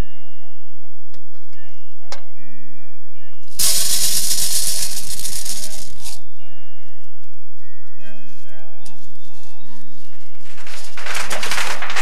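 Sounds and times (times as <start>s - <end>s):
loud rattling noise: 3.6s - 6.2s, 10.3s - 12.0s.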